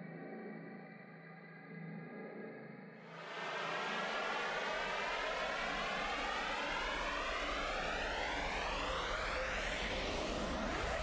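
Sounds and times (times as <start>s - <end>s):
rising noise whoosh: 3.2s - 11.0s.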